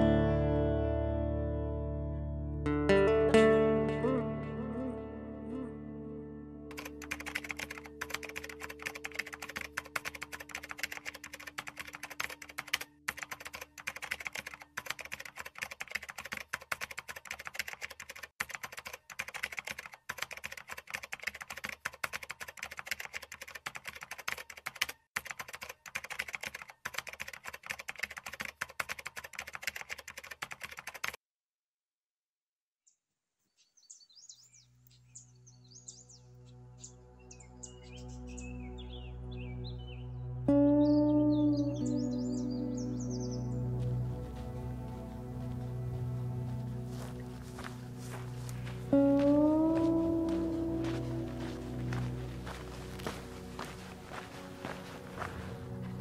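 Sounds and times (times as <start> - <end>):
guitar music: 0.0 - 8.0, 40.4 - 56.0
keyboard typing clicks: 6.7 - 31.2
birds chirping: 33.5 - 56.0.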